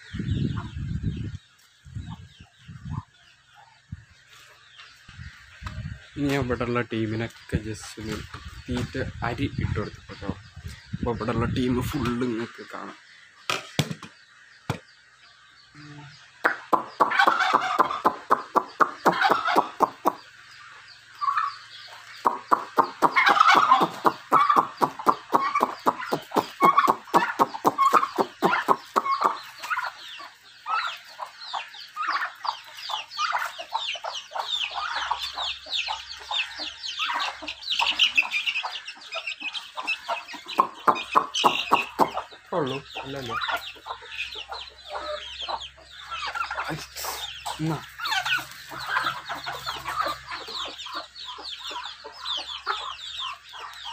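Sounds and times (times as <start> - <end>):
chickens clucking: 0.0 - 53.9.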